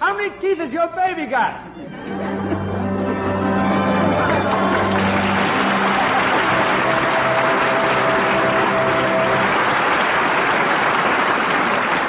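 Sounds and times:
orchestra sustained notes: 1.6 - 10.4
audience applauding: 1.9 - 12.0.

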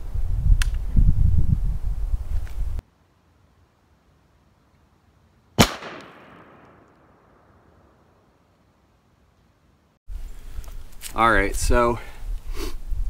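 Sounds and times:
musket shot echoing: 5.6 - 7.8.

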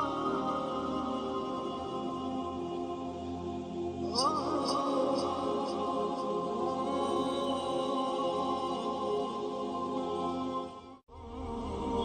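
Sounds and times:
devotional chanting: 0.0 - 12.0.

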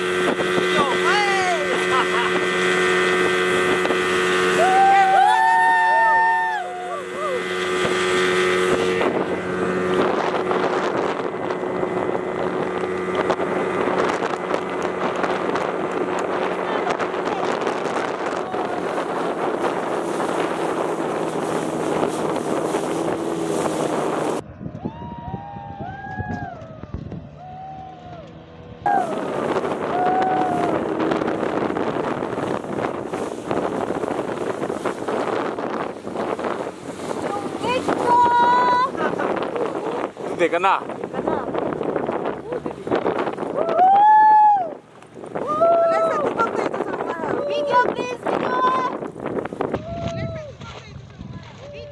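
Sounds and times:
rushing water and wind: 0.0 - 25.5, 26.2 - 51.9
speedboat outboard motor hum: 0.0 - 51.9.

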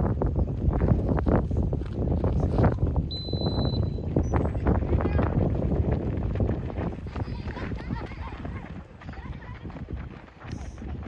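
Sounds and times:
wind buffeting the microphone: 0.0 - 11.0
voices calling out: 6.8 - 11.0.

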